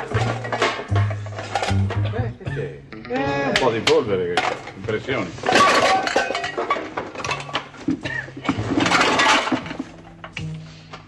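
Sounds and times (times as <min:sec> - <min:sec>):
objects clattering and clinking: 0:00.0 - 0:02.4, 0:03.6 - 0:11.0
soft background music: 0:00.0 - 0:11.0.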